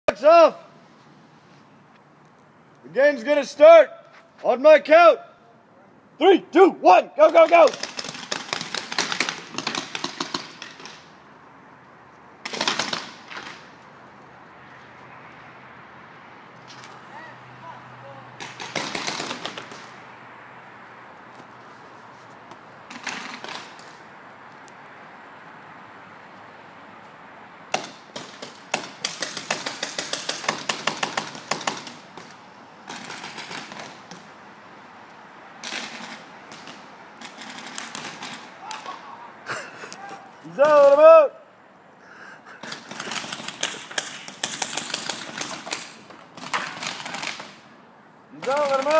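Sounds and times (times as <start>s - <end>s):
paintball markers firing: 7.4s - 11.1s, 12.4s - 13.7s, 18.4s - 20.0s, 22.9s - 24.0s, 27.7s - 34.3s, 35.6s - 39.0s, 42.6s - 47.7s, 48.4s - 48.9s.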